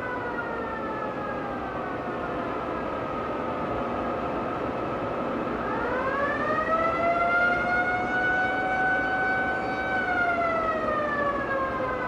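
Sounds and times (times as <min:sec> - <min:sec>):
siren-like alarm wail: 0:00.0 - 0:02.9, 0:05.6 - 0:12.0.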